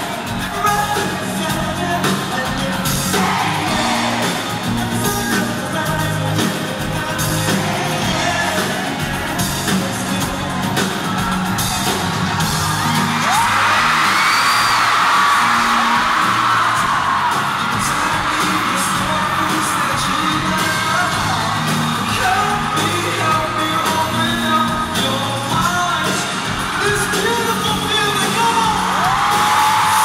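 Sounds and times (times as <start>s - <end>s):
fans screaming and cheering: 0.0s - 30.0s
live pop-rock band: 0.0s - 30.0s.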